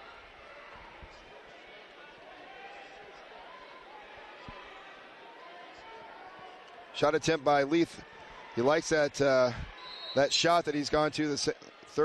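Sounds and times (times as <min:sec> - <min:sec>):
arena crowd murmur: 0:00.0 - 0:12.0.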